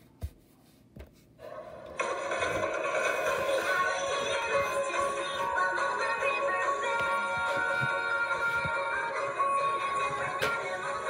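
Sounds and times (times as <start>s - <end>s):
song through a speaker: 1.4s - 11.0s.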